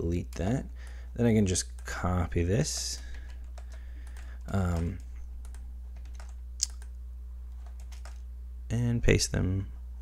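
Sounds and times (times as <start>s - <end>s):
steady low hum: 0.0s - 10.0s
keyboard keystrokes clicking: 2.7s - 6.9s, 7.5s - 8.2s.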